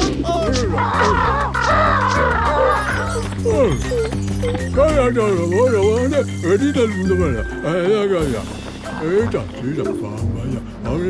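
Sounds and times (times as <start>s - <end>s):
cartoon birds laughing: 0.4s - 8.0s.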